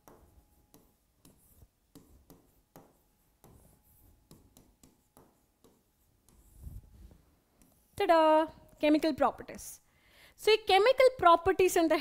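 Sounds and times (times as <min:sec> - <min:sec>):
pen tapping on touchscreen: 0:00.0 - 0:06.6.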